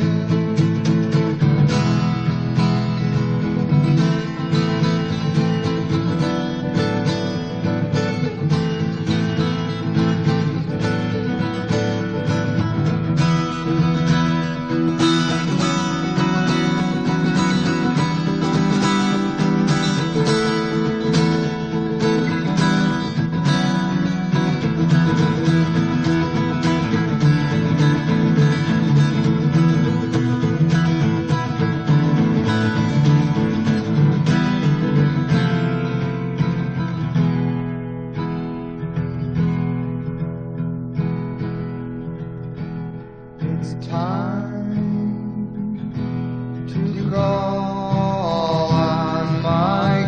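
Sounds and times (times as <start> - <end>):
acoustic guitar strumming: 0.0 - 50.0.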